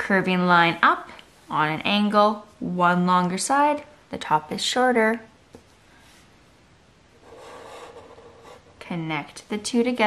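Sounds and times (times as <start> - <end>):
marker scratching on paper: 7.2 - 8.8.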